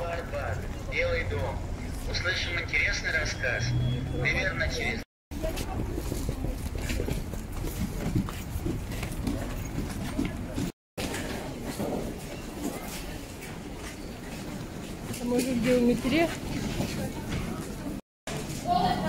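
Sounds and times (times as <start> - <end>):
light traffic: 0.0 - 5.9
street noise: 0.0 - 19.0.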